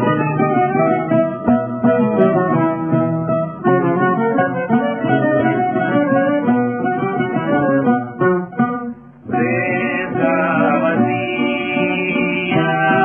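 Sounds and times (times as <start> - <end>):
bouzouki and guitar melody: 0.0 - 13.0.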